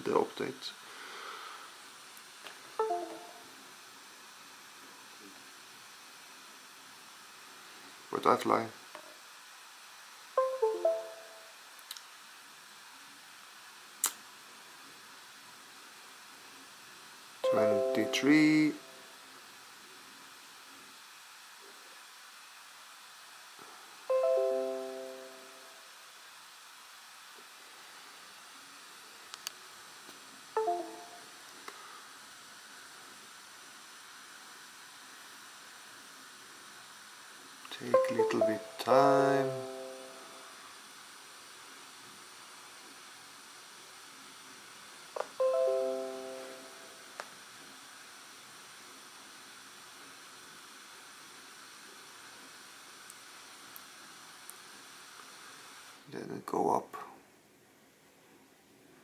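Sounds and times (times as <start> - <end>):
electronic tone sequences: 2.8 - 3.5, 10.4 - 11.5, 17.4 - 19.0, 38.0 - 40.4.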